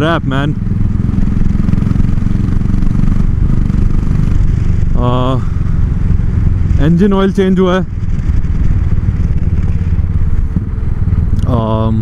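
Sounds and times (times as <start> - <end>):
motorcycle engine thumping: 7.9 - 11.4.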